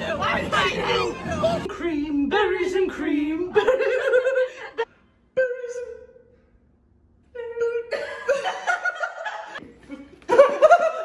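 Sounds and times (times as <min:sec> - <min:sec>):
women laughing: 0:03.6 - 0:04.9, 0:07.9 - 0:11.0.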